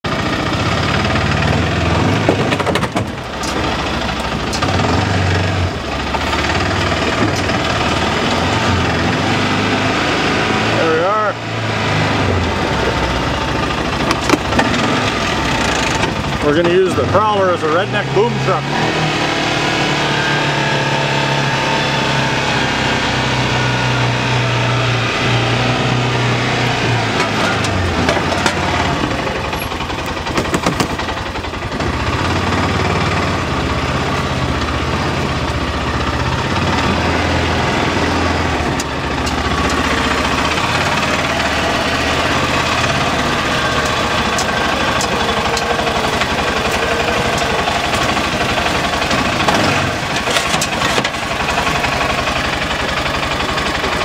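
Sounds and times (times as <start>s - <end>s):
utility vehicle engine running: 0.0s - 54.0s.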